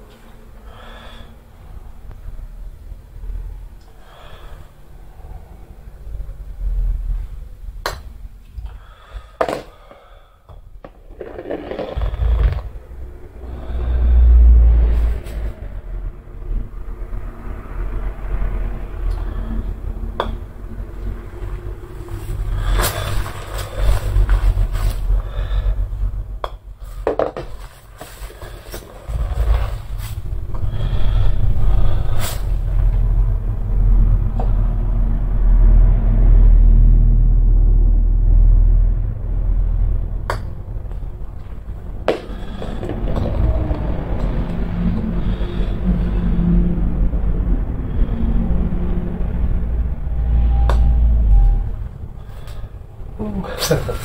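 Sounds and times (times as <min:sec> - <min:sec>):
balls rolling on mat: 0:07.8 - 0:13.1, 0:26.4 - 0:31.2, 0:40.2 - 0:45.3
golf balls knocking together: 0:09.4 - 0:12.8, 0:26.4 - 0:29.7.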